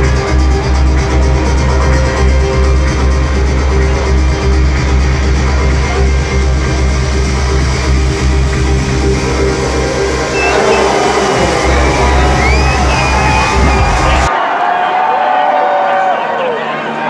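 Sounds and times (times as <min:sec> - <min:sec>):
electronic dance music: 0:00.0 - 0:14.3.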